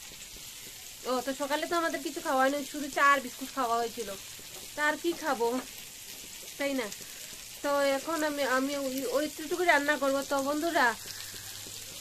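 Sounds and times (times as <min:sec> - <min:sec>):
food frying in a pan: 0:00.0 - 0:12.0
woman speaking: 0:01.0 - 0:04.2, 0:04.8 - 0:05.7, 0:06.6 - 0:07.0, 0:07.6 - 0:11.0.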